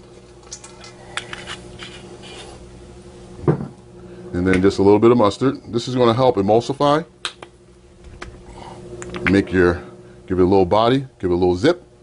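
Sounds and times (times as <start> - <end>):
steady low hum: 0.0 - 12.0
thump on counter: 3.4 - 3.8.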